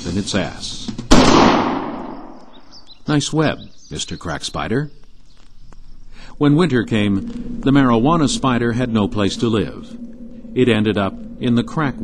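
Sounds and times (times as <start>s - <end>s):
gunshot with echo: 1.1s - 2.4s.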